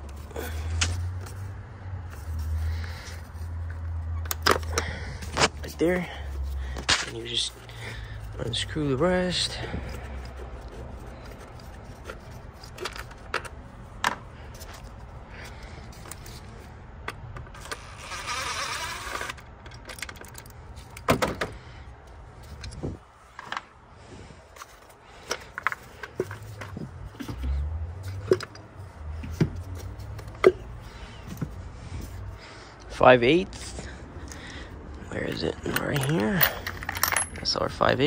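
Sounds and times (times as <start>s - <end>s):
power ratchet spinning bolts: 17.6s - 19.5s
metal tools clicking and knocking: 35.2s - 37.9s.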